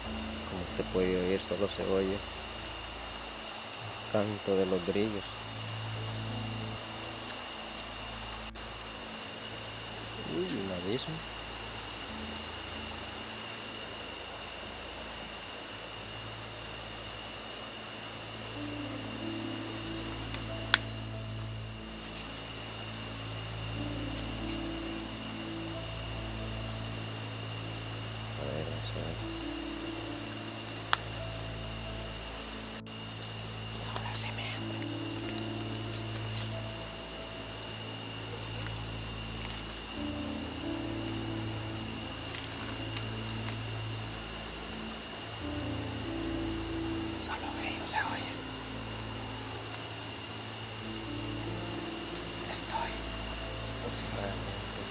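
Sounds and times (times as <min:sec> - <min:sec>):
crickets chirping: 0:00.0 - 0:54.9
low sustained background music: 0:00.0 - 0:54.9.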